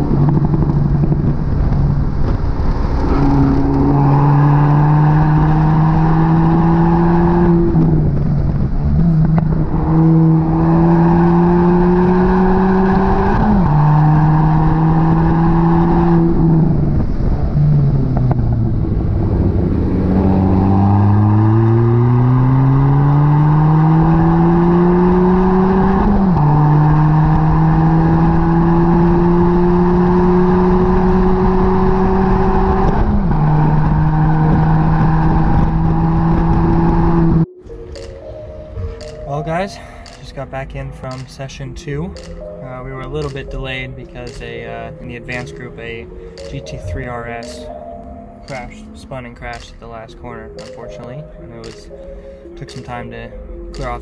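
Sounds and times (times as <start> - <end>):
car engine revving through gears: 0.0 - 37.5.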